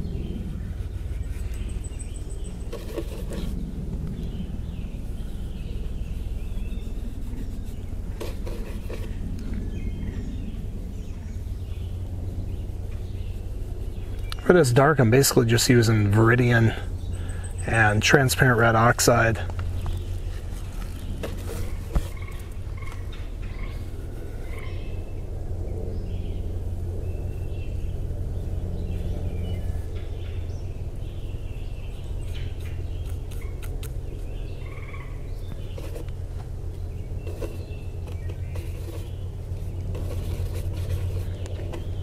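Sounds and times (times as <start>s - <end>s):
steady low rumble: 0.0s - 42.0s.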